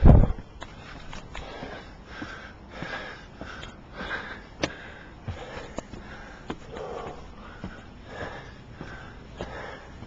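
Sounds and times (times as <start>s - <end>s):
footsteps on wooden stairs: 0.2s - 10.0s
person breathing hard: 0.7s - 10.0s.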